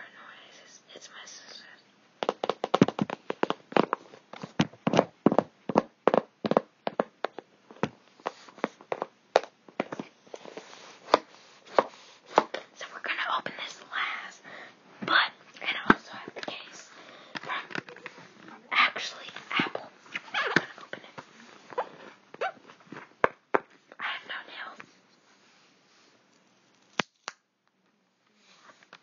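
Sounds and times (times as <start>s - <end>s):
sharp taps and clicks: 2.2s - 3.6s.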